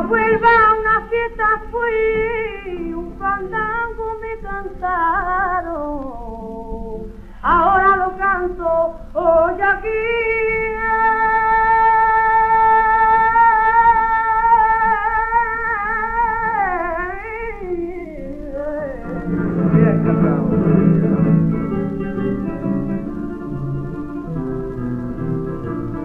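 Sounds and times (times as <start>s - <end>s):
woman singing flamenco: 0.0s - 26.0s
guitar plucked notes and chords: 17.7s - 26.0s.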